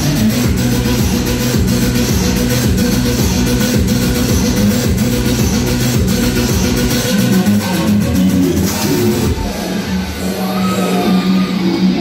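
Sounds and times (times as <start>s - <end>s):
loud club music with steady beat: 0.0s - 12.0s.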